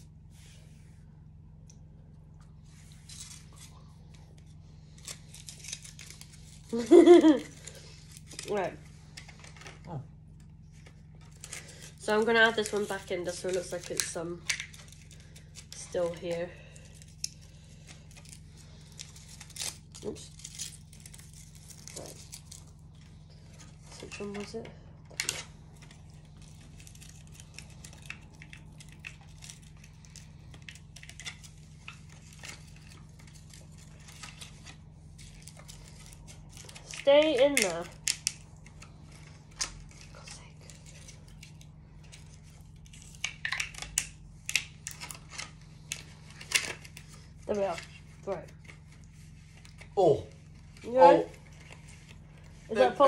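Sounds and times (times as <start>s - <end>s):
low steady hum: 0.0s - 53.0s
packaging crinkling: 2.7s - 53.0s.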